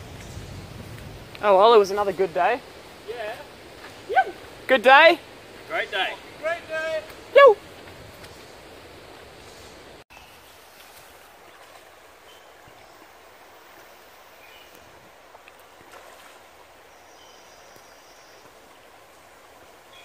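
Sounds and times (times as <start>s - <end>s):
stream flowing over stones: 0.0s - 20.0s.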